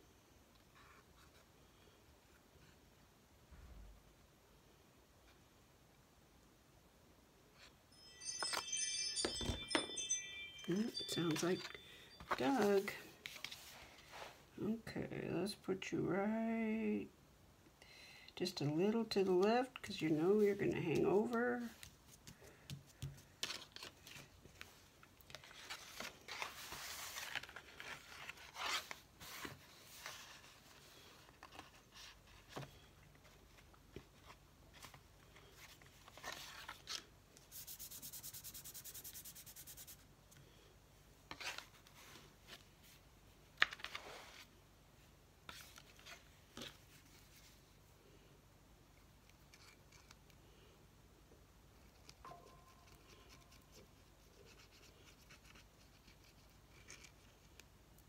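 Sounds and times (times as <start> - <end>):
paper rustling: 21.2 - 39.9.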